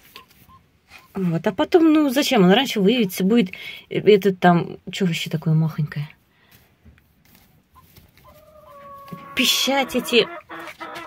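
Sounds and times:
hen calling: 7.7 - 11.0.

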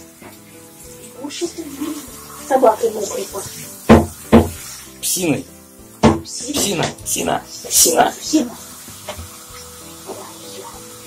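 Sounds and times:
knocks on plastic shower cabin: 3.9 - 4.6, 6.0 - 7.0.

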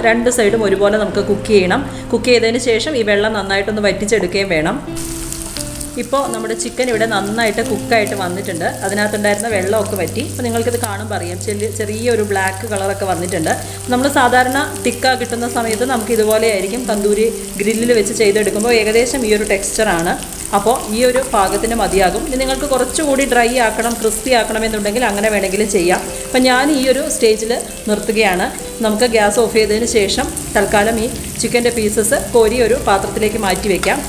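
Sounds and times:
spatula turning food in pan: 5.0 - 20.6
chicken sizzling in a pan: 5.0 - 34.0
person talking: 6.0 - 34.0.

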